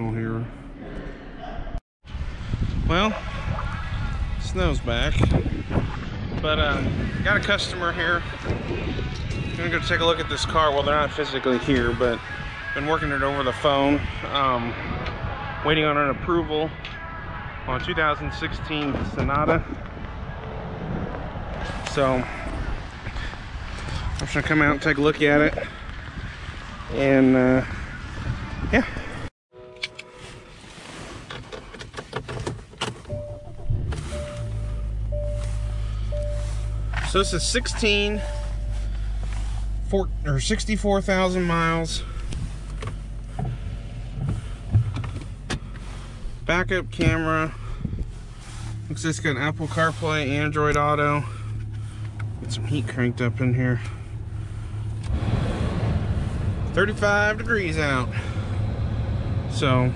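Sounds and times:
car engine starting and idling: 29.7s - 59.9s
electronic warning chime: 33.1s - 39.0s.

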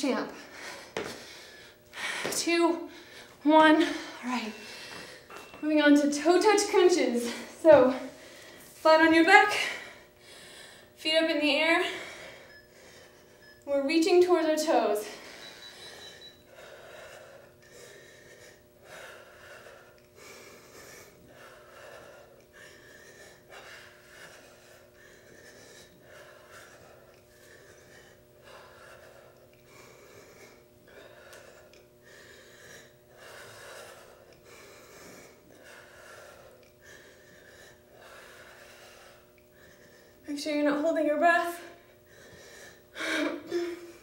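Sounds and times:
low steady hum: 0.0s - 44.0s
woman breathing hard: 0.3s - 5.6s, 9.4s - 13.6s, 14.6s - 44.0s.

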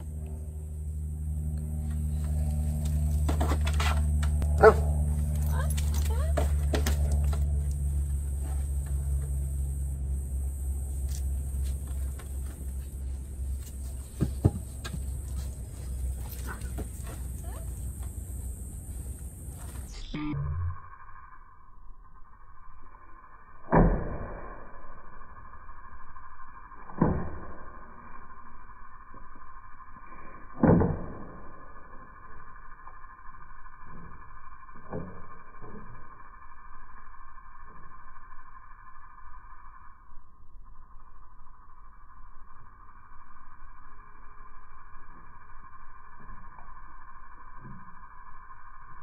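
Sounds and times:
steady low hum: 0.0s - 23.6s
muffled hum: 0.0s - 49.0s
dog barking: 4.6s - 4.9s.

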